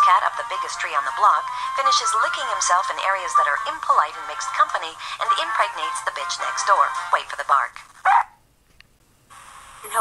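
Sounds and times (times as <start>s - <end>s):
dog bark: 8.0s - 8.4s.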